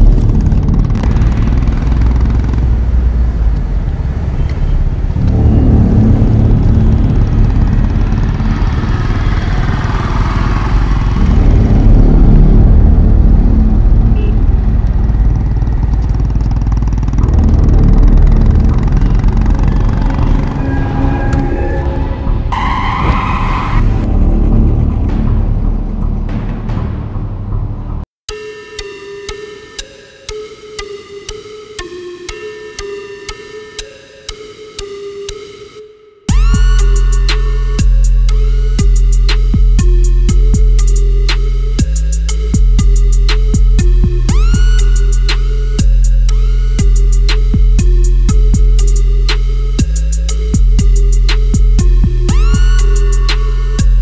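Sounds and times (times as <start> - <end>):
motorcycle engine: 0.0 - 27.2
vehicle engines running: 0.0 - 27.5
low rumble: 0.0 - 28.1
background music: 17.0 - 54.0
car tyres screeching: 18.6 - 24.2.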